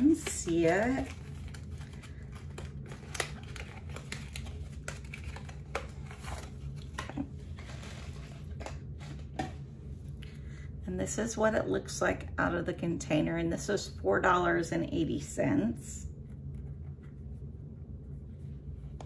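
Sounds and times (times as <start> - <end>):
packaging crinkling and rustling: 0.0 - 9.4
low steady hum: 0.0 - 19.0.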